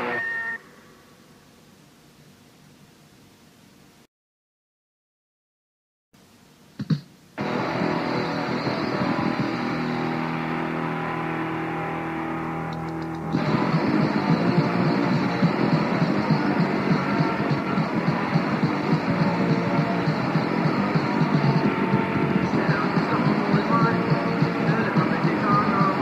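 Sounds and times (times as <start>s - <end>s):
droning distorted guitar chord: 0.0s - 0.7s, 7.4s - 26.0s
punk rock band playing: 7.4s - 26.0s.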